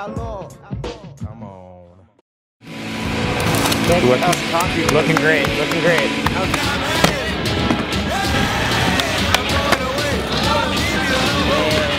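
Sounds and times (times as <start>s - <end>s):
background music: 0.0s - 11.9s.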